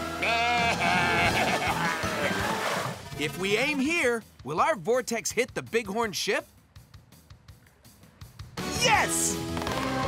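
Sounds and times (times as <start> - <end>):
adventure background music: 0.0 - 10.0
cartoon character laughing: 0.2 - 2.6.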